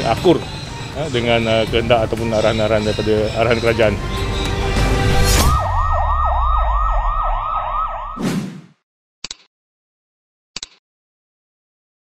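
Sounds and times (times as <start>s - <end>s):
siren yelping: 5.3s - 8.2s.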